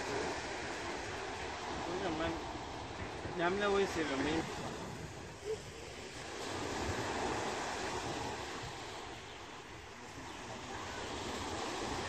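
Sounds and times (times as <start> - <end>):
distant surf: 0.0 - 12.0
wind on microphone: 0.0 - 12.0.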